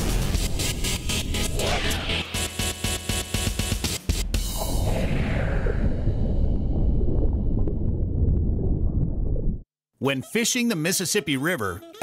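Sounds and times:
deep rumbling sound effect: 0:04.5 - 0:09.7.

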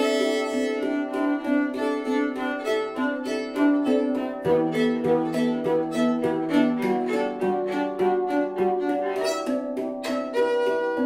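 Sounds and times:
handpan ringing notes: 0:00.0 - 0:11.0
violin long sustained notes: 0:00.0 - 0:11.0.

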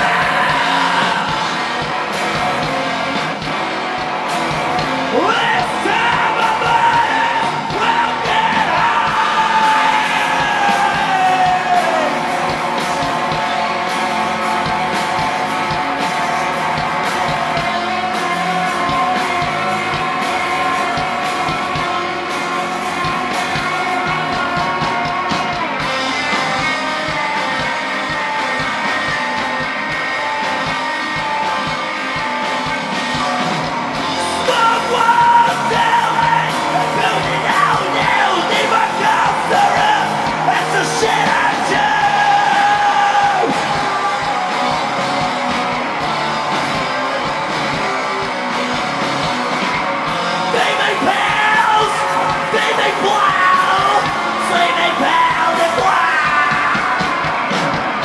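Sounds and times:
bass guitar: 0:00.0 - 0:58.0
drum kit: 0:00.0 - 0:58.0
electric guitars: 0:00.0 - 0:58.0
person yelling vocals: 0:05.1 - 0:12.2.

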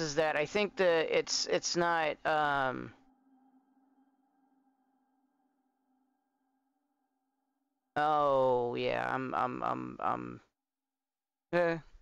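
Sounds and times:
faint steady tone: 0:02.1 - 0:07.0.

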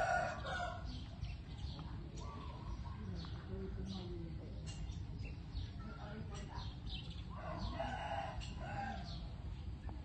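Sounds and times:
rooster crowing: 0:00.0 - 0:00.9, 0:07.4 - 0:09.2.

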